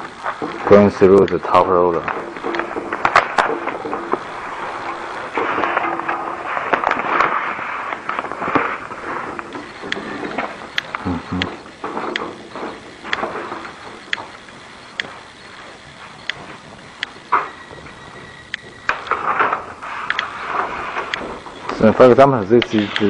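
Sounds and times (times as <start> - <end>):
plastic film rustling and crackling: 0.0 - 23.0
sharp clicks: 0.0 - 23.0.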